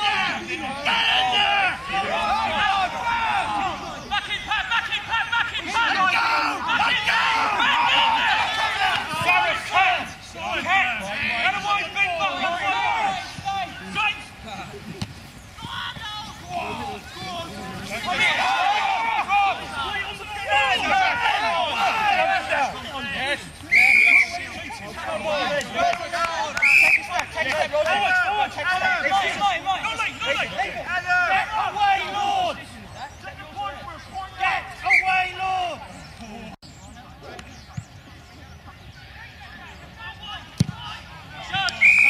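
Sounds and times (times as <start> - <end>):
people shouting: 0.0 - 14.6, 15.6 - 35.8
referee whistle blasts: 23.7 - 24.4, 26.6 - 27.1, 41.7 - 42.0.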